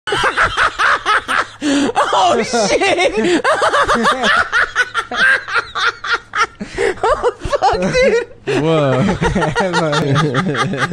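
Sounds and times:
man laughing hard: 0:00.1 - 0:10.9.

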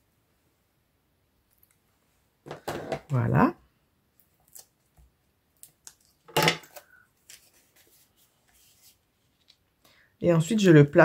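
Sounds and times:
paper and tape rustling: 0:06.0 - 0:09.7.

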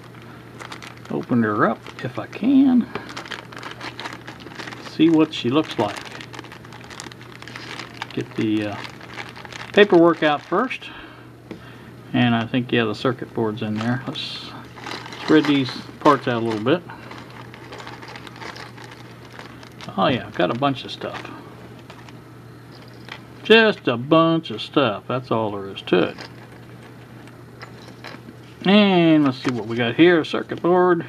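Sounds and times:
plastic bag crinkling: 0:00.0 - 0:11.6, 0:12.3 - 0:23.8, 0:25.8 - 0:30.6
small components rattling on stone: 0:02.9 - 0:10.7, 0:13.7 - 0:23.3, 0:25.9 - 0:28.3.

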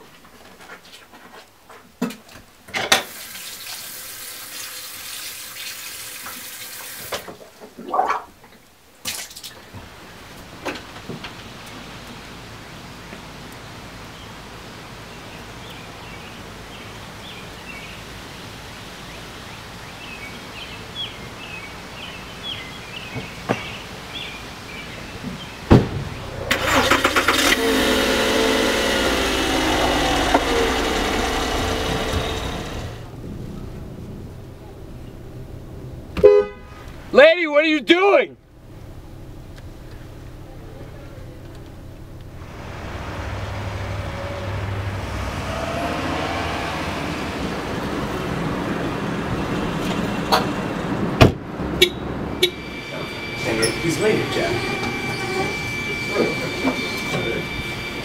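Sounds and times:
car engine cranking and running: 0:26.1 - 0:36.2, 0:38.5 - 0:58.0.

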